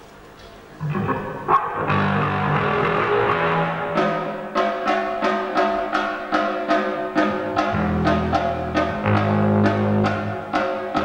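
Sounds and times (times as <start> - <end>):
rock band with fuzz guitar: 0.8 - 5.4, 7.2 - 11.0.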